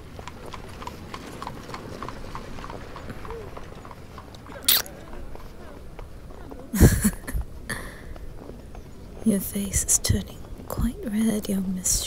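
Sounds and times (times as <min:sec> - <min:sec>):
horse hooves clip-clopping: 0:00.0 - 0:09.4
street ambience hiss: 0:00.0 - 0:12.0.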